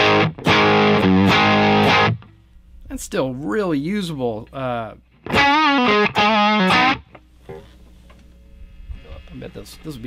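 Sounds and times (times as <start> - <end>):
distorted electric guitar chord: 0.0 - 2.2, 5.3 - 7.0.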